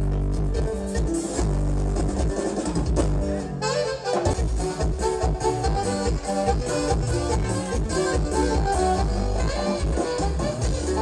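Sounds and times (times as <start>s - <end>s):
live band playing dance music: 0.0s - 11.0s.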